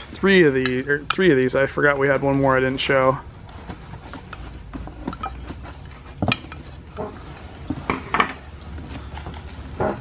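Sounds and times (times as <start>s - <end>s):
packing material rustling: 3.2s - 10.0s.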